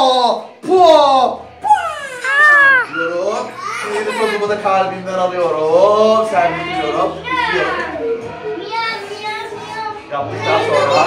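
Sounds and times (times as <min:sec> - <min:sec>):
music with children singing: 0:03.2 - 0:11.0.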